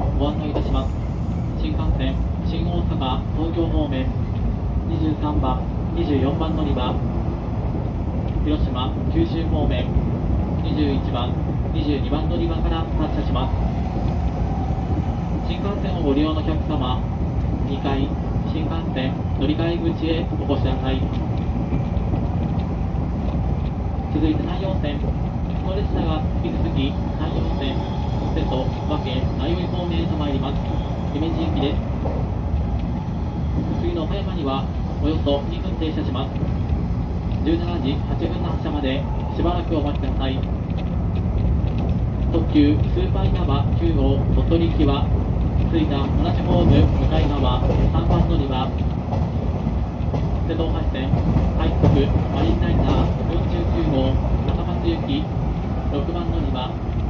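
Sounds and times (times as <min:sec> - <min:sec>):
train running rumble: 0:00.0 - 0:57.0.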